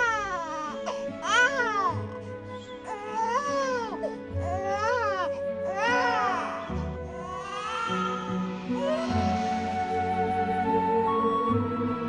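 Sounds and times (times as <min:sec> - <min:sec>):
newborn baby crying: 0:00.0 - 0:08.5
soft background music: 0:00.0 - 0:12.0.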